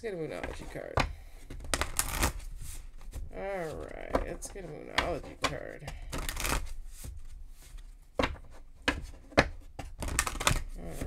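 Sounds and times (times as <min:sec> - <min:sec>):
cards shuffling: 0:00.2 - 0:11.0
cards slapping: 0:00.4 - 0:11.0.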